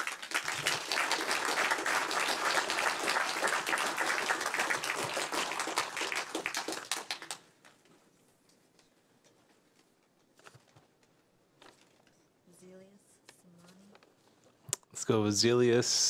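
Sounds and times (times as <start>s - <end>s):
audience applauding: 0.0s - 7.8s.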